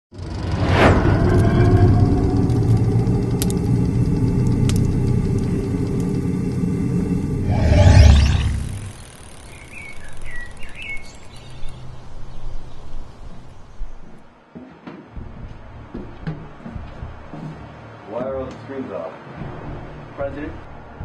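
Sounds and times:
low rumbling drone: 0.1s - 10.1s
loud whoosh: 0.2s - 9.4s.

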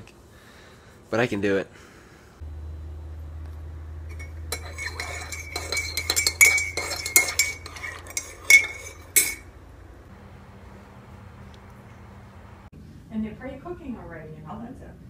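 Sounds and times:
steady low hum: 0.0s - 15.0s
spoon clinking in ceramic mug: 4.1s - 9.5s.

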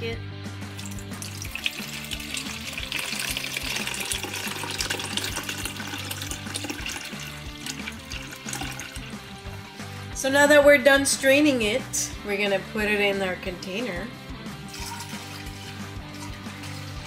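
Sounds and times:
background music: 0.0s - 17.0s
juice pouring through a strainer: 0.7s - 9.6s, 14.7s - 17.0s.

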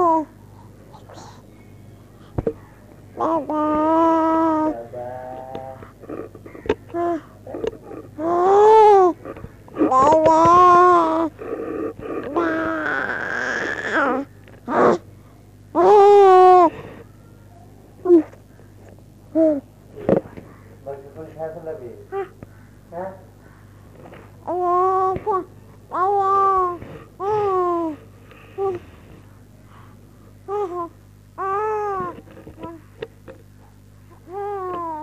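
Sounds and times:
steady low hum: 0.0s - 35.0s
newborn baby crying: 6.1s - 9.2s, 9.8s - 15.0s.

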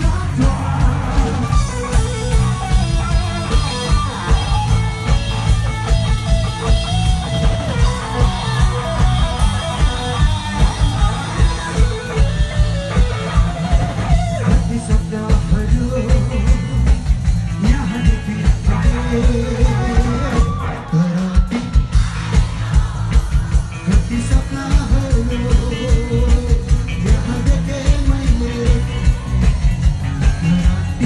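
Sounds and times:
drums keeping a steady beat: 0.0s - 31.0s
electric guitars: 0.0s - 31.0s.

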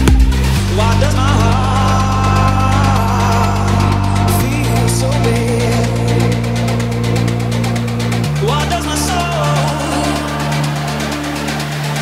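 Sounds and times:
synth bass chord: 0.0s - 12.0s.

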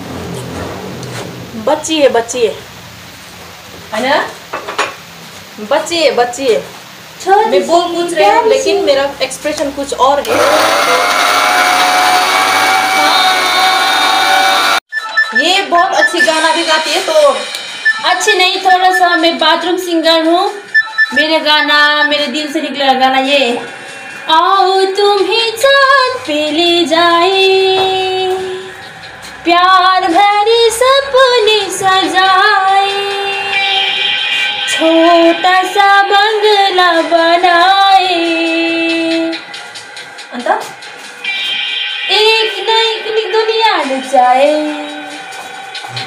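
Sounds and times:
loud rushing noise: 0.0s - 3.6s, 23.2s - 46.0s
woman singing unaccompanied: 24.3s - 28.7s, 29.4s - 34.0s, 34.7s - 39.4s, 42.1s - 45.2s.

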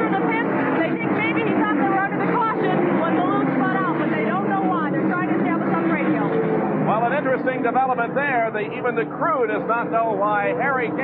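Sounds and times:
race car engines running: 0.0s - 11.0s.

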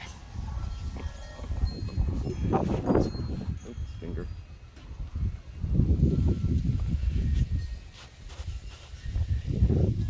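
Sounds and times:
faint thin ringing tones: 0.0s - 10.0s
low rumble on microphone: 4.9s - 7.8s.

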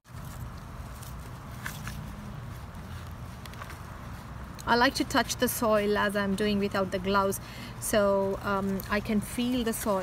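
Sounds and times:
hands rustling potting soil: 0.1s - 10.0s.

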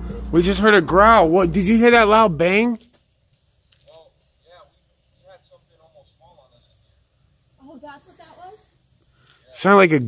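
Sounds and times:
night insects trilling: 0.0s - 10.0s.

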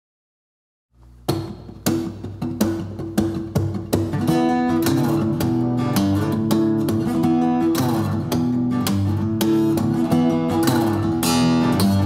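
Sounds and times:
acoustic guitar strumming: 1.2s - 12.0s.

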